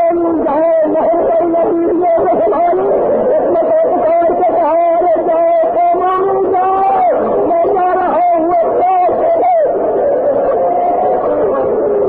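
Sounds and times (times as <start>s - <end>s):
man preaching with drawn-out words: 0.0s - 12.0s.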